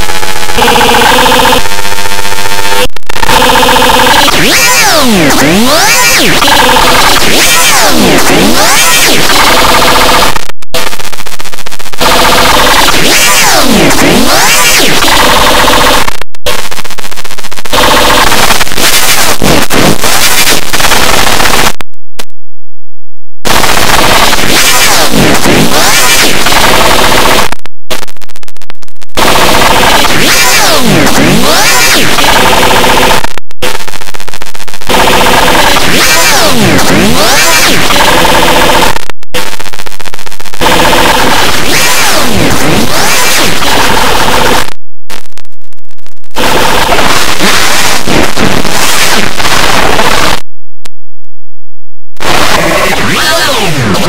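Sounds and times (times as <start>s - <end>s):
rapid stuttering pulses: 0.0s - 21.8s, 23.4s - 50.4s, 52.2s - 54.0s
harsh distorted noise: 0.0s - 22.4s, 23.3s - 54.0s.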